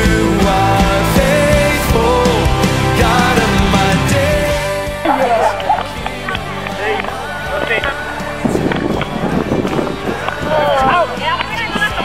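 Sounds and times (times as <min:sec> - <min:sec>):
group of people talking and calling out: 0:00.0 - 0:12.0.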